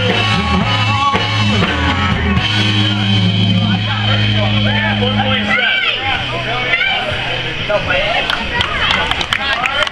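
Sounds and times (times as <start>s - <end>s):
rock band holding final chord: 0.0s - 7.4s
audience calling out and talking: 0.0s - 9.9s.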